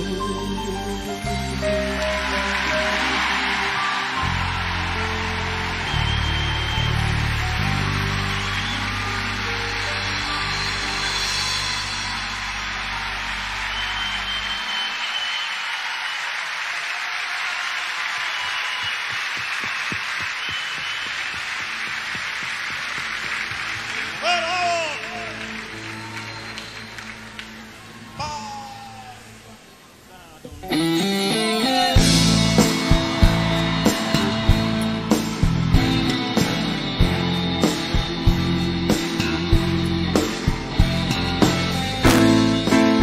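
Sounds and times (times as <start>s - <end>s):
live band holding chord: 0.0s - 14.7s, 30.7s - 43.0s
audience clapping and cheering: 1.2s - 30.1s, 31.9s - 43.0s.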